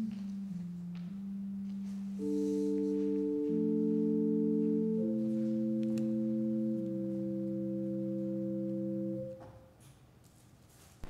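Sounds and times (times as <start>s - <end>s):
organ playing held chords: 0.0s - 9.4s.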